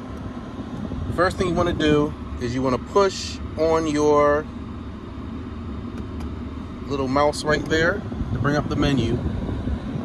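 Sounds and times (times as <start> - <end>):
low rumble of car cabin: 0.0 - 10.0.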